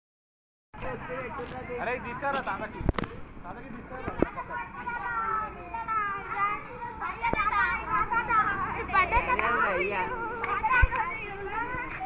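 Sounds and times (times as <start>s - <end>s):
children talking and shouting: 0.8s - 12.0s.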